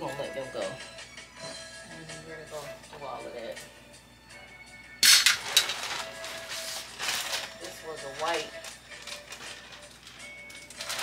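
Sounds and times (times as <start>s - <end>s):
plastic bag crinkling: 5.0s - 11.0s.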